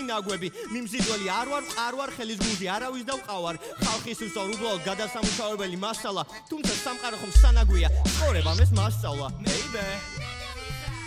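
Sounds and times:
rapping over a sparse beat: 0.0s - 10.2s
sharp percussion hits: 7.4s - 9.8s.

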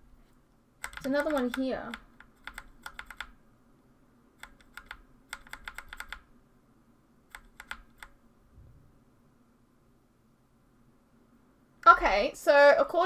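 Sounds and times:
typing on computer keyboard: 0.8s - 3.4s, 4.4s - 6.3s, 7.3s - 8.2s.

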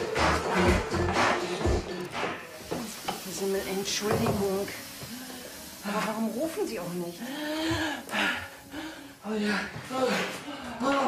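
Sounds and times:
gasping breaths: 7.2s - 11.0s.

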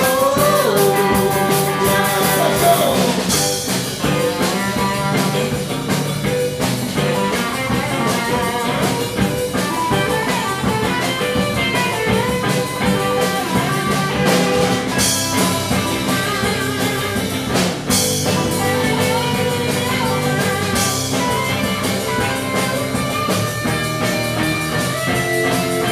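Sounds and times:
drum kit steady beat: 0.0s - 25.9s
electric guitars: 0.0s - 25.9s.

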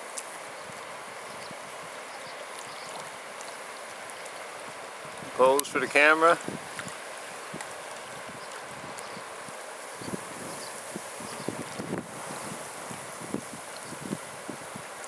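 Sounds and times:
rippling water: 0.0s - 15.0s
wind: 0.0s - 15.0s.

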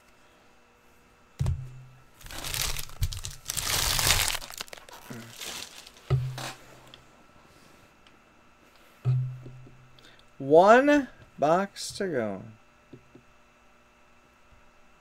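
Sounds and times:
foil wrappers crinkling: 2.2s - 6.5s.

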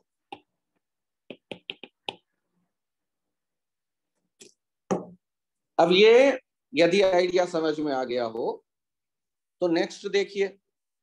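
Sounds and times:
stylus tapping on tablet: 0.2s - 2.4s.

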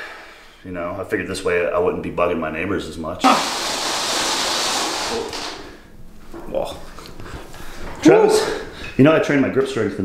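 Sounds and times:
roller wheels on wooden floor: 3.2s - 5.8s.

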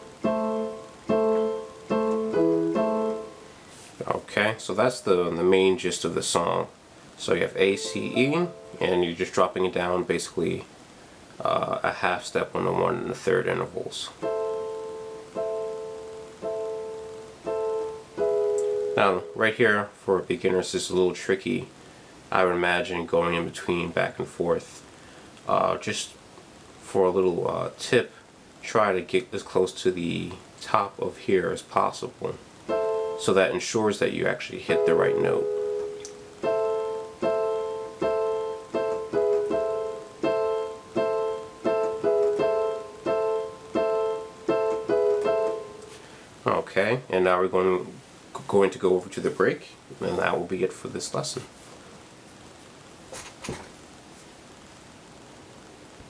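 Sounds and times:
piano chords on keyboard: 0.0s - 3.6s, 7.5s - 9.7s, 14.2s - 19.8s, 32.6s - 33.7s, 34.5s - 46.0s.

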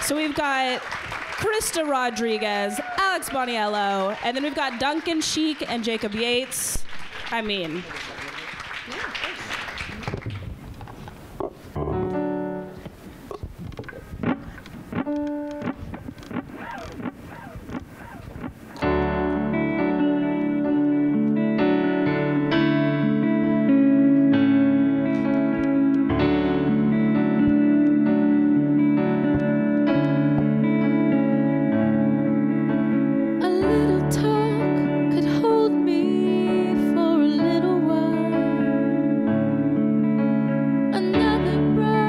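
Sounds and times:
audience applause: 0.0s - 10.8s
digital keyboard notes: 11.7s - 33.4s
keyboard and guitar song intro: 11.8s - 13.0s, 14.1s - 42.0s.

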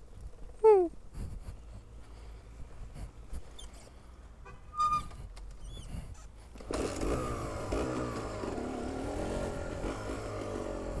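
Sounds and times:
motorcycle engine running: 6.6s - 11.0s.

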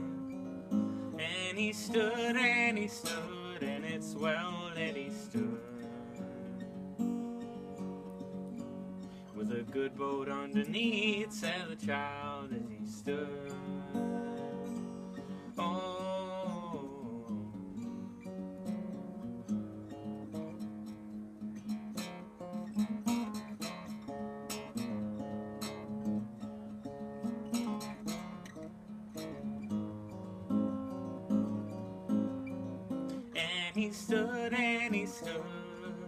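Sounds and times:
acoustic guitar plucked notes: 0.0s - 36.0s.

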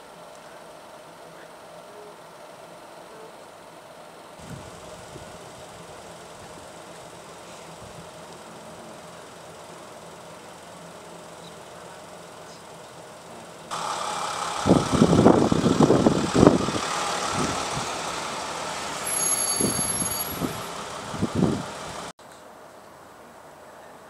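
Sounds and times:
vehicle engine idling: 0.0s - 22.2s
loud vehicle driving up: 4.4s - 22.1s.

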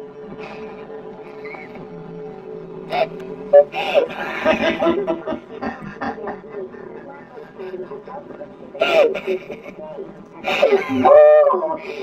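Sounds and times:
person laughing: 2.9s - 8.1s, 8.8s - 12.0s.

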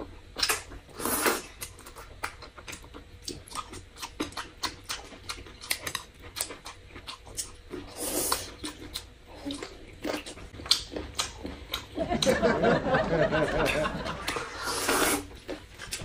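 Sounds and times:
slurp: 0.9s - 1.7s, 7.8s - 10.4s, 14.2s - 15.4s
wet chewing and lip smacking: 1.5s - 12.3s.

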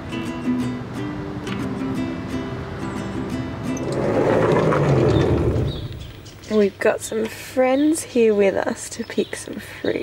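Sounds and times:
acoustic guitar picking: 0.0s - 6.7s.

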